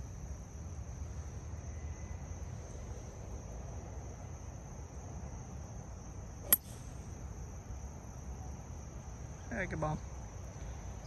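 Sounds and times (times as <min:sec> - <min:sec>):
insects buzzing: 0:00.0 - 0:11.0
golf club striking ball: 0:06.5 - 0:07.0.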